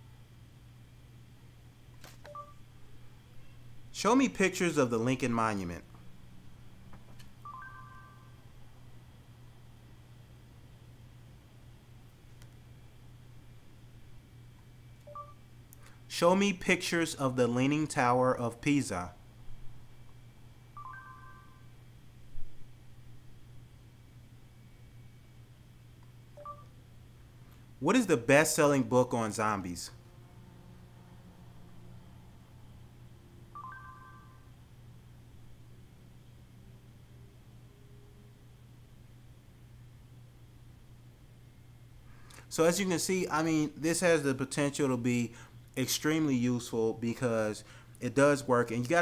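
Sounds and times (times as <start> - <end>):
steady low hum: 0.0 - 49.0
faint electronic beeps: 2.2 - 3.7, 7.4 - 8.4, 14.9 - 15.5, 20.6 - 21.8, 26.3 - 26.8, 33.5 - 34.6.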